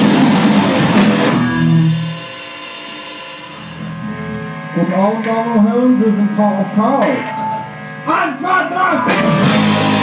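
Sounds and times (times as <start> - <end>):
rock band playing: 0.0 - 10.0
guitar chord ringing: 3.0 - 10.0.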